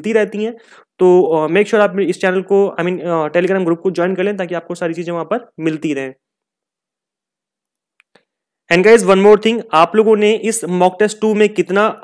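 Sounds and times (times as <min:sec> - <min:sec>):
man speaking: 0:00.0 - 0:06.2, 0:08.7 - 0:12.0.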